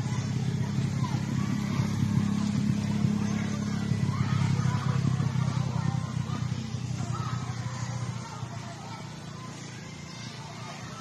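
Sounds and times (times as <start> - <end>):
faint voices: 0.0 - 11.0
low engine hum: 0.0 - 11.0.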